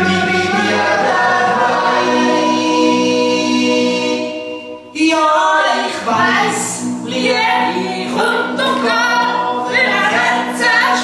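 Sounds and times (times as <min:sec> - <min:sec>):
voices singing with vibrato: 0:00.0 - 0:11.0.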